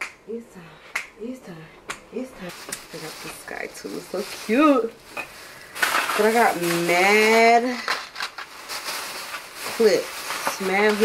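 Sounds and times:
plastic packaging crinkling: 2.5 - 11.0.

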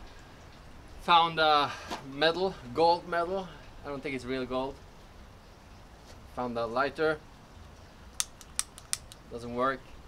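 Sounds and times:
lighter clicking: 8.2 - 9.2.

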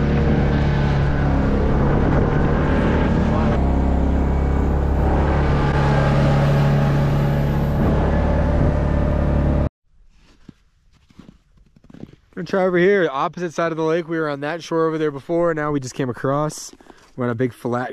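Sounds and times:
off-road vehicle engine running: 0.0 - 9.7.

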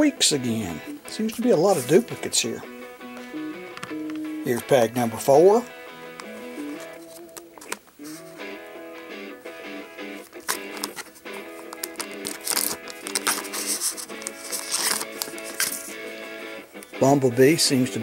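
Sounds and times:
background music: 0.0 - 18.0
foil pack crinkling and tearing: 10.3 - 15.9.

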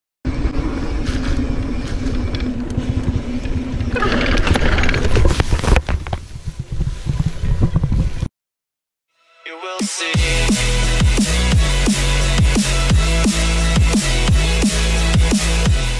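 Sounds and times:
bike rumbling over dirt trail: 0.3 - 8.3
wind buffeting microphone: 0.3 - 8.3
bike crashing with clatter: 3.9 - 6.1.

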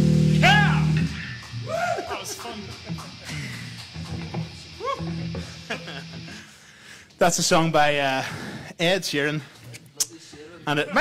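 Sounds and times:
electric guitar picked notes: 0.0 - 1.4
held low bass note: 0.0 - 1.4
swooping guitar tone: 0.0 - 2.0, 4.0 - 6.3.

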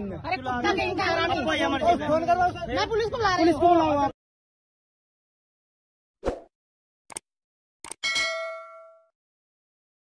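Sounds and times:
notification bell ding: 8.0 - 9.1.

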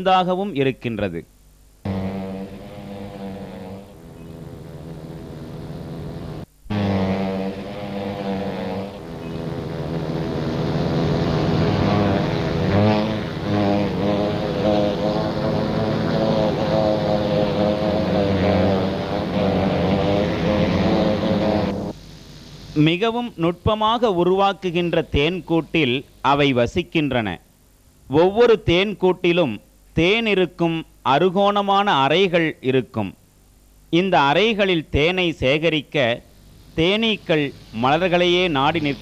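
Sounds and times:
bee swarm buzzing: 1.8 - 23.2, 36.5 - 39.0.

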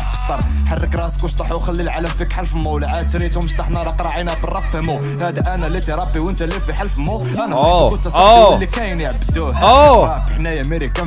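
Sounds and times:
rapping over a beat: 0.0 - 11.0
deep gliding bass: 7.6 - 8.8.

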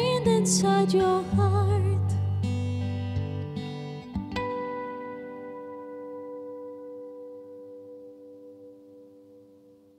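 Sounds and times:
acoustic guitar chord ringing: 0.0 - 9.9.

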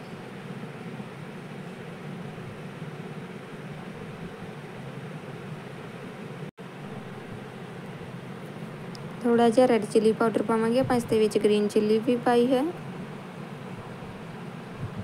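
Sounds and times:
steady background hiss: 0.0 - 15.0.

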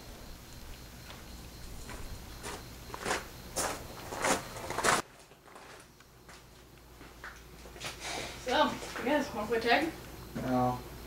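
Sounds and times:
footsteps on gravel: 1.8 - 7.9.

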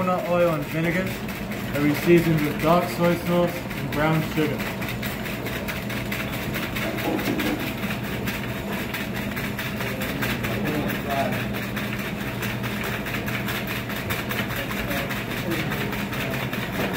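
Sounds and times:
shaker machine clattering: 0.0 - 16.9
steady hum: 0.0 - 16.9.

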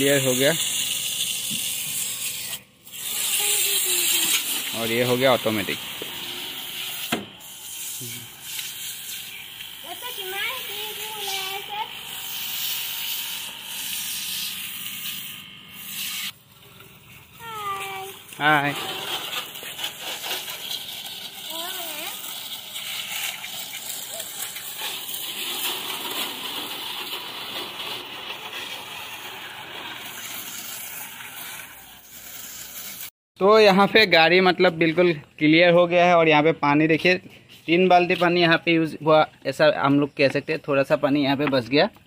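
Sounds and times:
pressure washer water jet hissing: 0.0 - 16.4, 17.4 - 33.1.

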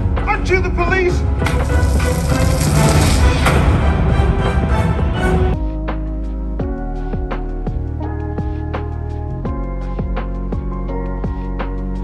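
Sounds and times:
loud dramatic film music: 0.0 - 11.4
rushing noise: 1.4 - 5.5.

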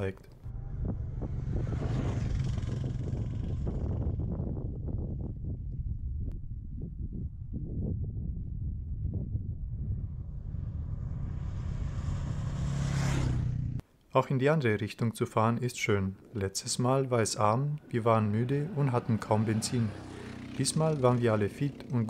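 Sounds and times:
motorcycle engine droning: 0.3 - 13.8, 17.3 - 22.0
rushing wind noise: 0.5 - 13.4.

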